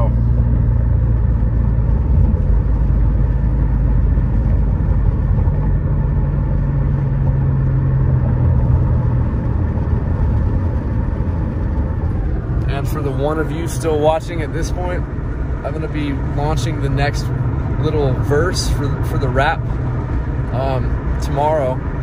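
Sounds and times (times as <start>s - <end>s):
car tyres and engine rumble: 0.0s - 22.0s.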